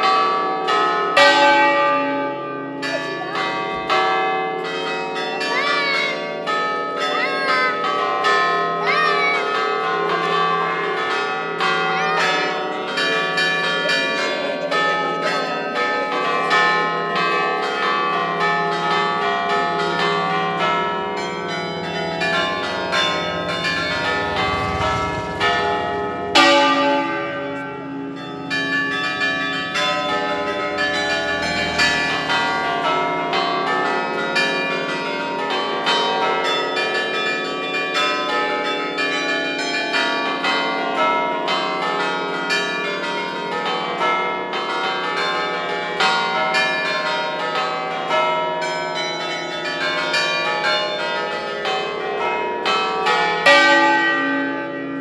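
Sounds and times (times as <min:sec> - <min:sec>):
church bells pealing: 0:00.0 - 0:55.0
large bell swinging: 0:01.2 - 0:35.0.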